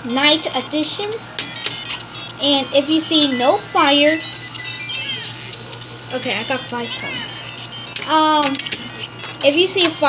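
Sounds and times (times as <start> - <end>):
toy electronic sound effects: 0.9 - 10.0.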